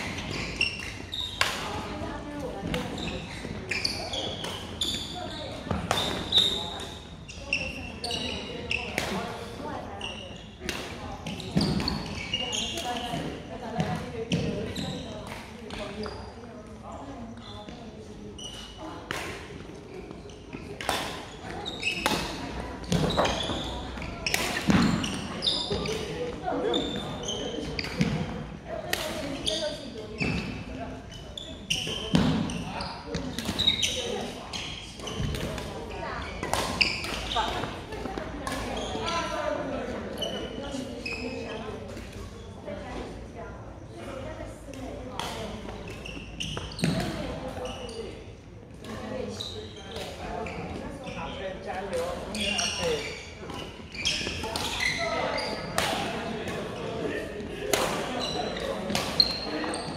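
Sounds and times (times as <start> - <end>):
rackets hitting shuttlecock: 8.8 - 9.3, 20.6 - 26.4, 36.4 - 39.2, 45.1 - 47.5, 55.7 - 56.7, 57.7 - 59.6.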